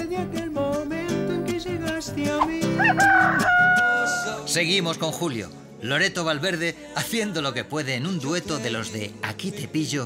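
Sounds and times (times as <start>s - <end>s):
musical accompaniment: 0.0s - 10.0s.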